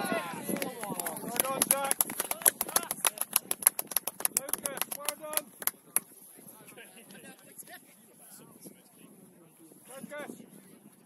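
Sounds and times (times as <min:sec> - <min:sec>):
cheering shouts: 0:00.0 - 0:01.0
spectators clapping: 0:00.4 - 0:06.1.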